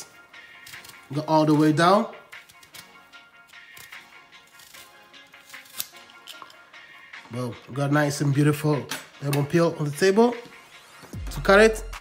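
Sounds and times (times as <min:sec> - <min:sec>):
quiet background music: 0:00.0 - 0:12.0
peeler scraping lemon skin: 0:03.5 - 0:06.6.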